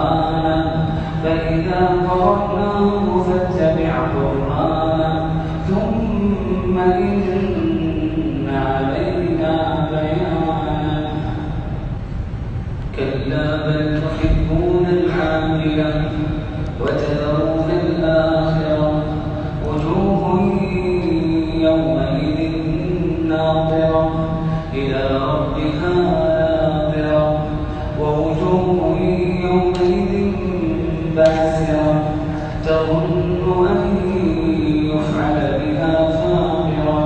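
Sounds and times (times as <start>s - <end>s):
man chanting melodic recitation: 0.0s - 11.7s, 12.9s - 37.0s.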